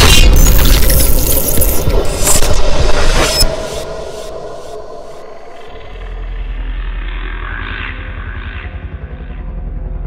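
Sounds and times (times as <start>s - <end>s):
deep rumbling bass drone: 0.0s - 10.0s.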